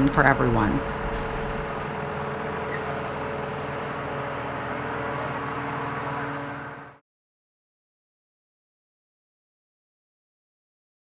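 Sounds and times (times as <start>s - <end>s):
machinery hum: 0.0s - 7.0s
sprayer fan rushing: 0.0s - 7.0s.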